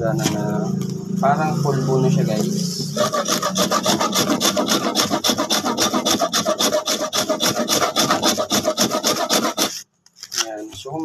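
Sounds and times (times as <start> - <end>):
salt scraped on metal grater: 3.0 - 9.8.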